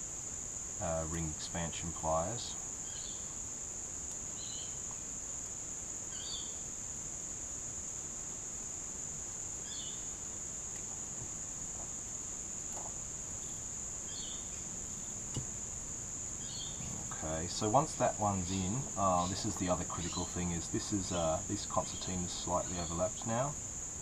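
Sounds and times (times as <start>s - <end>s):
faint scratchy sounds: 0.8s - 2.6s, 10.7s - 24.0s
high-pitched whine: 16.3s - 24.0s.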